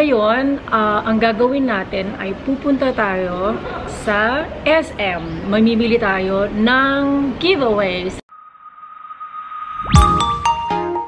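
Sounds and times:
rising whoosh: 0:08.3 - 0:10.7
high electronic tone: 0:08.3 - 0:11.0.

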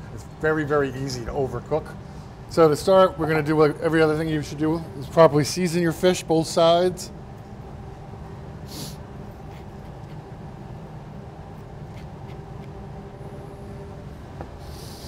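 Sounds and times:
kitchen ventilation hum: 0:00.0 - 0:15.0.

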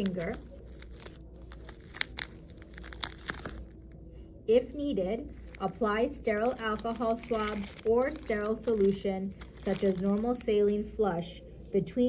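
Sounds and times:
plastic film crinkling: 0:00.0 - 0:03.9, 0:05.3 - 0:10.9.

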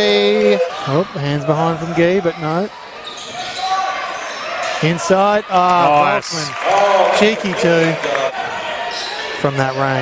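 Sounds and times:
commentator speaking: 0:04.8 - 0:08.2.

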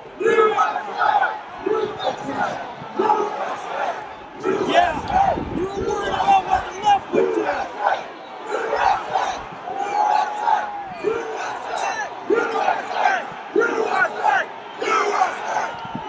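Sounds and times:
crowd shouting: 0:00.0 - 0:16.0.

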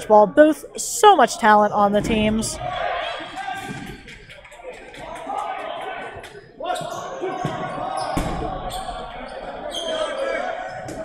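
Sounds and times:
balls thudding on gym floor: 0:06.8 - 0:08.6.

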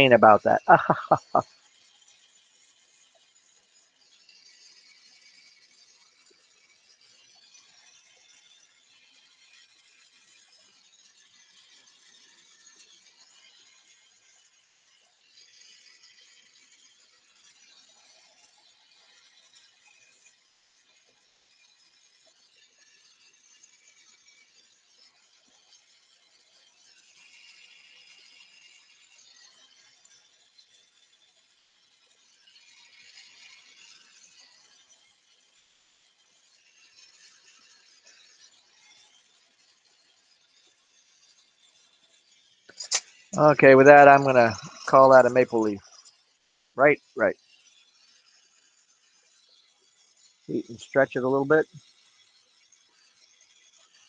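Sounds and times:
torch flame hissing: 0:00.0 - 0:08.9, 0:41.2 - 0:46.2, 0:50.0 - 0:51.8.

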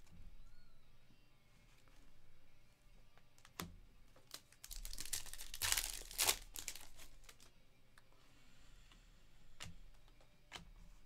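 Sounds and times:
foil wrapper tearing and crinkling: 0:04.2 - 0:07.5.

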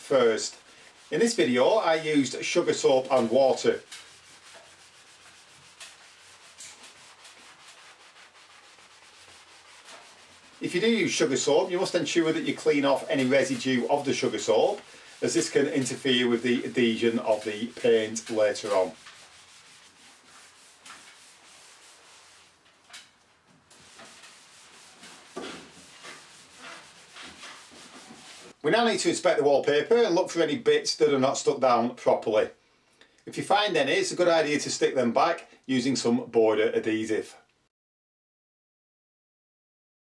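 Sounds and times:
wet sponge scrubbing wallpaper: 0:00.0 - 0:28.6.

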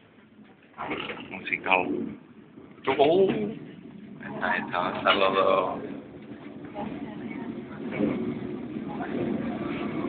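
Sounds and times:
tram rumble: 0:00.0 - 0:10.0
faint voices: 0:02.9 - 0:10.0.

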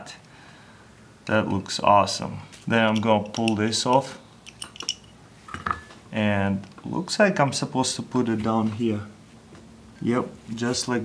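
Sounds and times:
faint metallic ring: 0:03.0 - 0:06.0.

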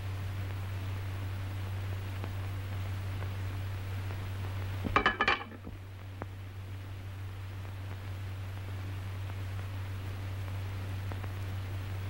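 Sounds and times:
steady low hum: 0:00.0 - 0:12.0
cutlery clinking on a plate: 0:04.9 - 0:05.7.

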